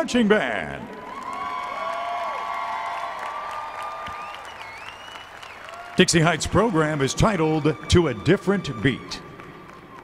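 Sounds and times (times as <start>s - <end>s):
audience applauding: 0.9s - 10.0s
drawn-out cheering voices: 0.9s - 10.0s.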